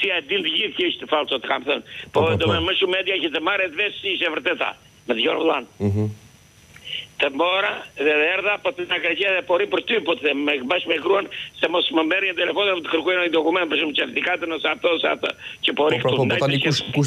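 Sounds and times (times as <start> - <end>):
man talking over telephone: 0.0 - 6.1, 7.2 - 17.0.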